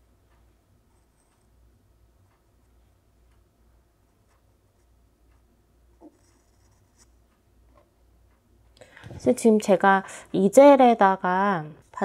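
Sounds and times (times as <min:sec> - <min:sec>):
pencil scratching on paper: 0:06.0 - 0:07.2.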